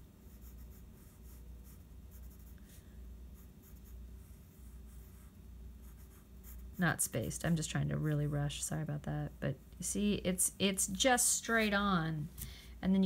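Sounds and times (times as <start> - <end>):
pencil scratching on paper: 0.2 - 2.8, 3.4 - 6.8.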